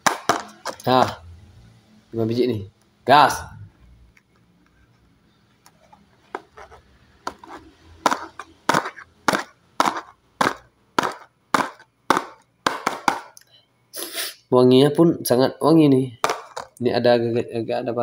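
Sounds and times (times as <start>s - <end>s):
soap bars tapping cardboard box: 0.0s - 0.8s, 6.4s - 13.4s, 16.2s - 16.7s.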